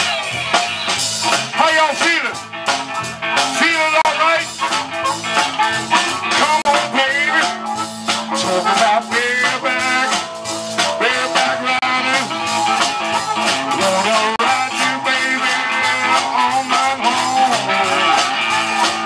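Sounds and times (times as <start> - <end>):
blues band playing: 0.0 - 19.0
blues harmonica bending notes: 0.0 - 19.0.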